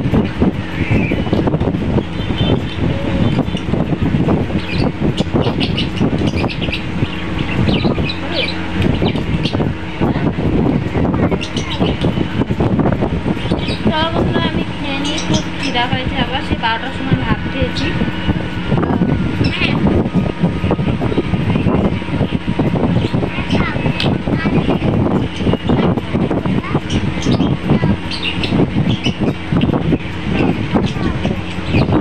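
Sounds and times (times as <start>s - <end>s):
high chirping: 0.0s - 32.0s
indistinct talking: 0.0s - 32.0s
steady low hum: 0.0s - 32.0s.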